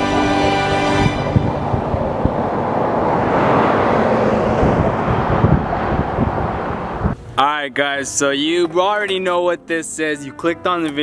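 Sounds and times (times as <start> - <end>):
wind on microphone: 0.0 - 7.2
road noise rushing: 0.0 - 8.3.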